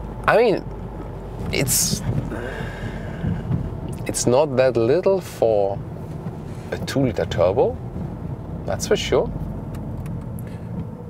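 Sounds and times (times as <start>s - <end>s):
car engine and road noise in cabin: 0.0s - 11.0s.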